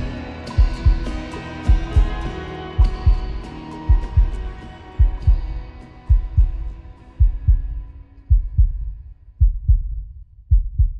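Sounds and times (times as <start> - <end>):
slow heartbeat thumps: 0.6 - 10.9.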